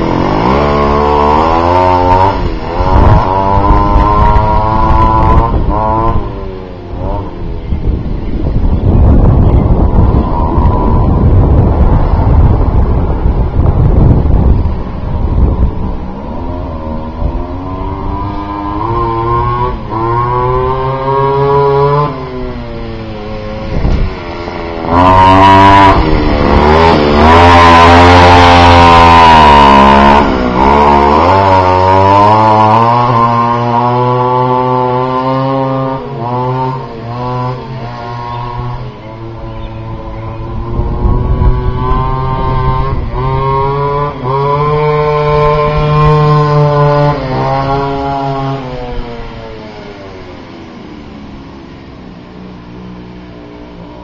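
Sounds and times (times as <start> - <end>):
scooter two-stroke engine revving: 0.0 - 7.7, 16.3 - 54.0.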